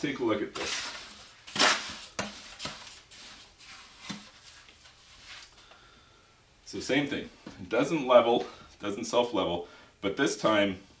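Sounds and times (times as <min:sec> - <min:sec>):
trowel scraping mortar in bucket: 0:00.5 - 0:05.5.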